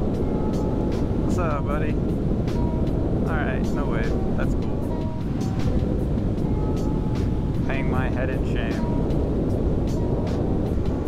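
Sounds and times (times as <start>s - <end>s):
wind rush: 0.0s - 11.0s.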